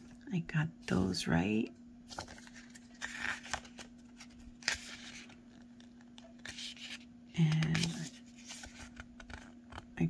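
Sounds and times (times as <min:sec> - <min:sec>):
paper pages turning: 0:02.1 - 0:09.9.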